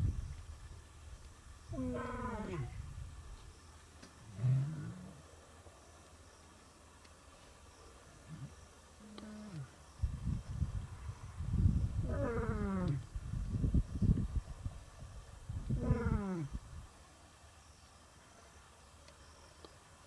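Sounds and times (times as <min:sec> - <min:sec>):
lion roaring: 0:01.7 - 0:02.8, 0:04.3 - 0:05.3, 0:12.0 - 0:13.0, 0:15.8 - 0:16.5.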